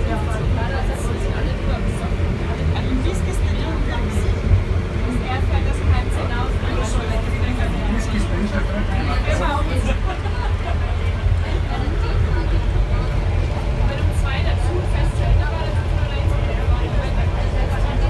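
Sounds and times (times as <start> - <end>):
people talking indistinctly: 0.0 - 18.0.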